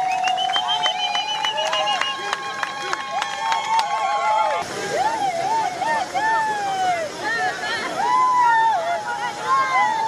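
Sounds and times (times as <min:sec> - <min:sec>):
sharp claps: 0:00.0 - 0:04.0
crowd high-pitched calls: 0:00.0 - 0:06.6.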